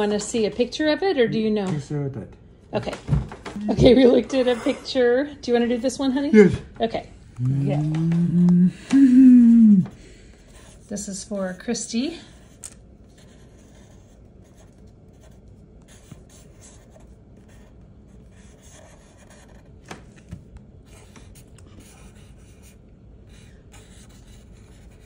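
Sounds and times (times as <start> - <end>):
marker scratching on paper: 10.4 - 19.8, 20.9 - 25.0.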